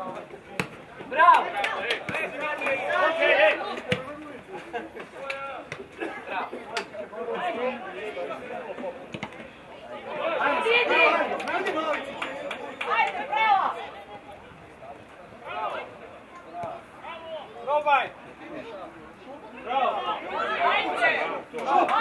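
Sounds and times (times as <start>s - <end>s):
people shouting and calling out: 1.0s - 8.8s, 9.7s - 14.4s, 15.4s - 22.0s.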